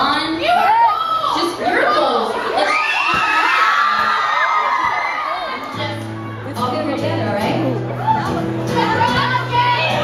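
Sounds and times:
audience cheering: 2.5s - 6.4s.

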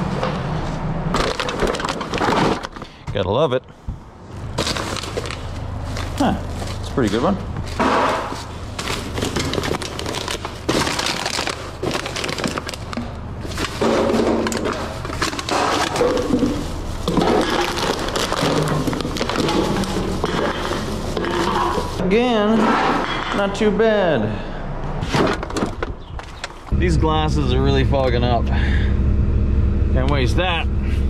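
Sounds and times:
plastic bags rustling: 1.1s - 3.0s, 4.3s - 23.5s
plastic bottles and cans knocking: 7.7s - 22.0s.

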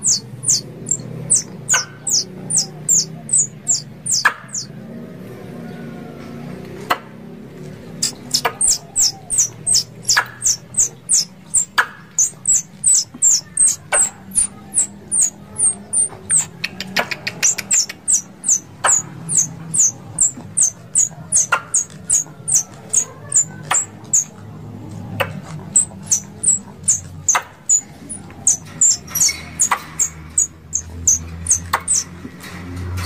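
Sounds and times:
squirrel chirping: 0.0s - 4.7s, 7.9s - 24.4s, 25.0s - 32.2s
sharp clicks: 8.0s - 24.3s.

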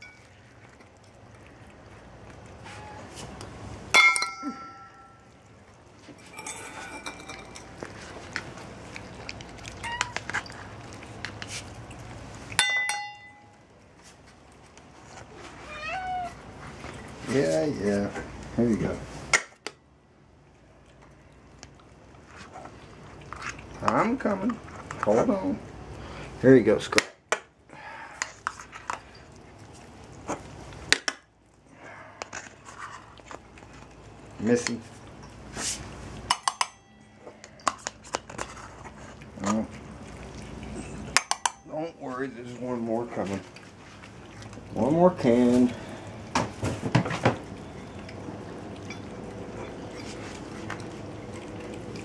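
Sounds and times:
bowls and cans clinking: 0.0s - 0.6s, 2.6s - 11.6s, 12.4s - 13.6s, 23.2s - 25.3s, 28.0s - 29.4s, 34.4s - 39.8s, 40.6s - 43.6s
food bowls clicking and knocking: 6.1s - 11.5s, 36.2s - 39.8s, 40.9s - 41.7s
cats meowing: 9.6s - 10.4s, 15.3s - 16.5s.

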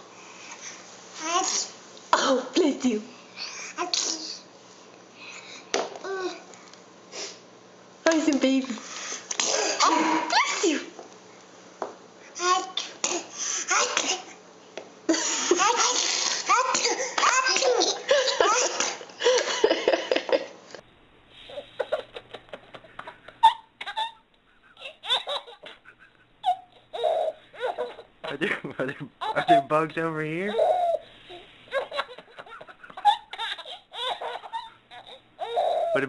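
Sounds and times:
person sneezing loudly: 9.4s - 10.8s
baby giggling and laughing: 15.1s - 20.5s, 21.5s - 28.4s, 29.2s - 29.7s, 30.5s - 36.0s.

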